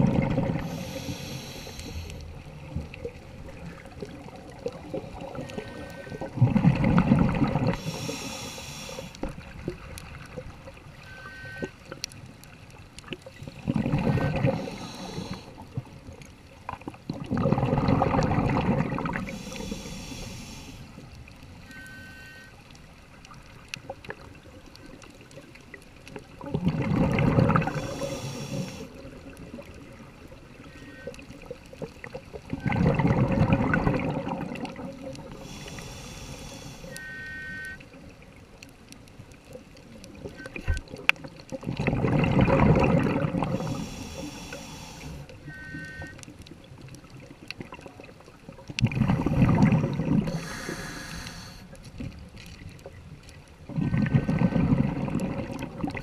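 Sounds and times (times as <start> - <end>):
exhaled bubbles rumbling: 0.0 - 1.2, 2.1 - 8.1, 9.1 - 11.0, 12.0 - 19.8, 23.4 - 35.7, 39.4 - 43.9, 46.2 - 50.8, 51.7 - 56.0
hissing regulator inhalations: 0.6 - 2.3, 7.7 - 9.2, 14.4 - 15.6, 19.2 - 21.0, 27.6 - 29.0, 35.3 - 37.5, 43.5 - 45.3, 50.3 - 51.8.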